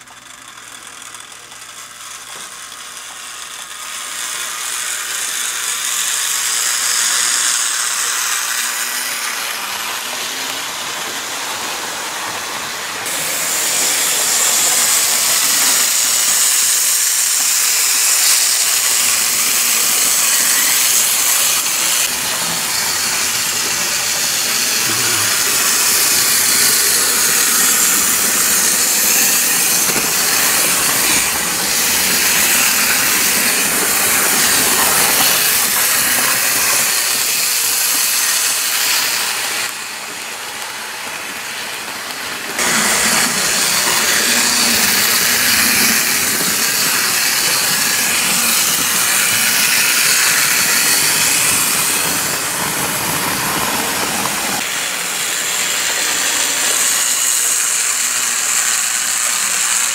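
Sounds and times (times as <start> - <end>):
model train motor whirring: 0.0 - 59.9.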